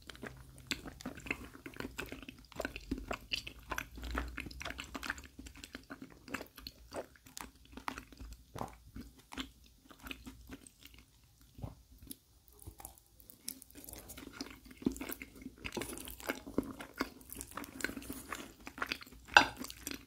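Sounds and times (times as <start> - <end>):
chewing with wet mouth clicks: 0.0 - 20.0
fork tapping a plate: 19.4 - 19.6.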